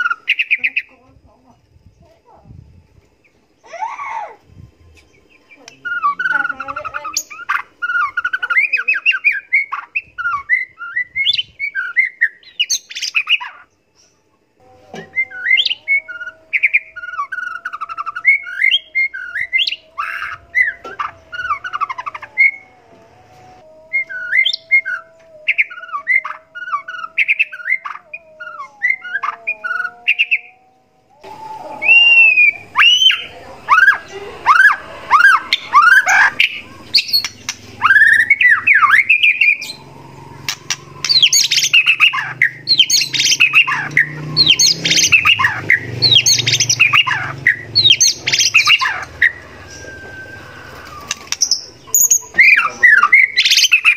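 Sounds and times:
songbird singing: 0:00.0 - 0:53.9.

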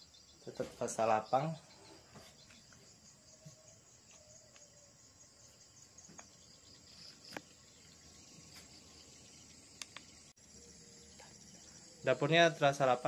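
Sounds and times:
insects chirping: 0:00.0 - 0:13.0.

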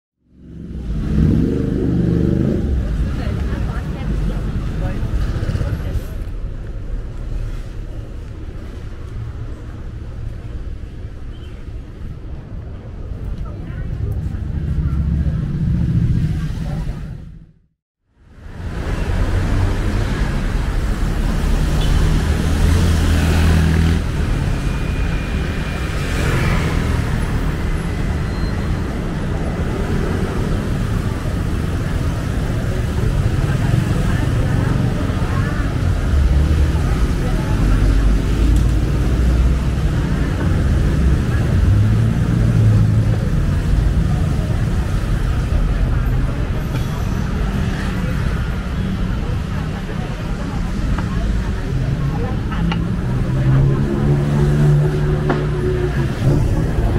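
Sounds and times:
road traffic rumble: 0:00.2 - 0:56.9
passers-by talking: 0:01.8 - 0:10.8, 0:12.0 - 0:17.4, 0:25.8 - 0:56.9.

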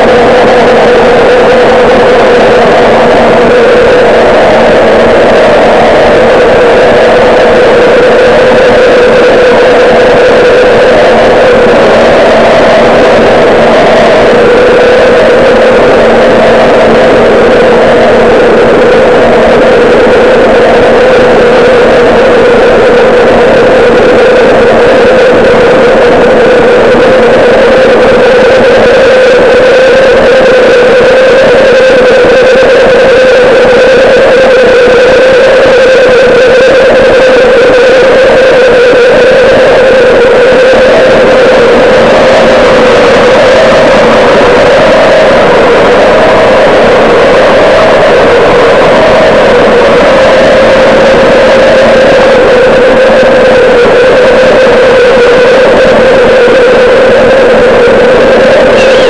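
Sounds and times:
distorted live rock band: 0:00.0 - 0:59.0
loud bass guitar: 0:00.0 - 0:59.0.

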